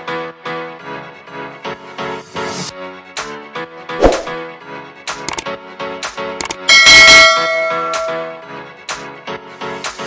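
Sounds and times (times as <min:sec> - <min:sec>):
notification bell ding: 0:06.7 - 0:08.3.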